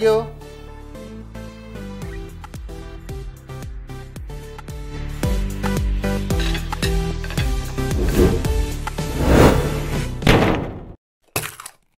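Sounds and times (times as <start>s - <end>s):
short thud sound effect: 10.2s - 11.0s.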